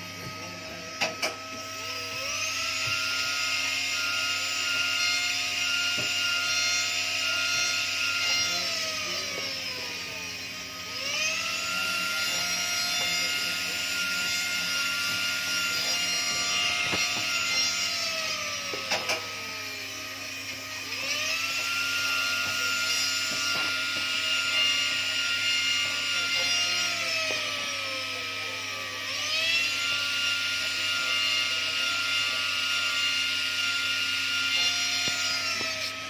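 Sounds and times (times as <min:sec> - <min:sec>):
rotary tool whining: 0:00.0 - 0:36.0.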